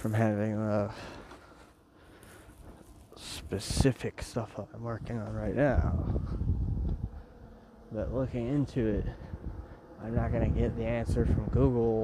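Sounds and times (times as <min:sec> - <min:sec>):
low buzzing rumble: 0:00.0 - 0:12.0.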